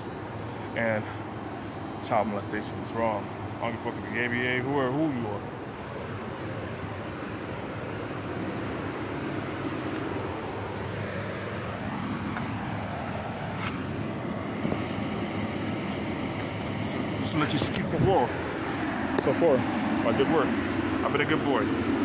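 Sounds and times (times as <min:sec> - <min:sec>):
city background rumble: 0:00.0 - 0:22.0.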